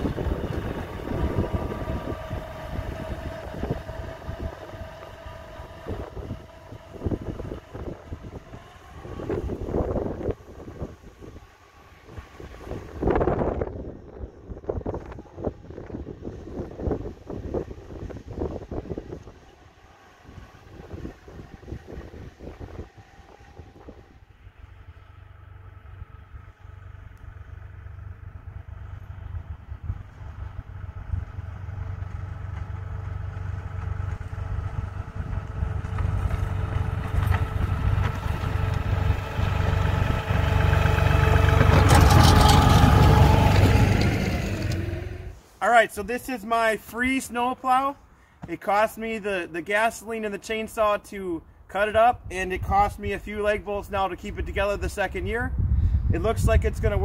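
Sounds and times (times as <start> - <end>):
wind buffeting microphone: 0.0 - 45.4, 52.0 - 57.0
tractor diesel engine running: 0.0 - 45.6.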